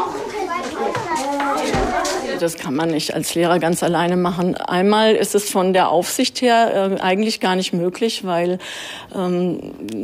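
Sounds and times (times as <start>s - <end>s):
young children talking: 0.0s - 2.7s.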